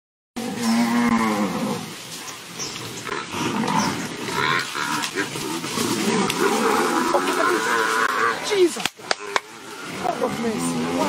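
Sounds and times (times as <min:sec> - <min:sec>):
buffalo bawling: 0:03.2 - 0:11.0
herd commotion: 0:03.2 - 0:11.0.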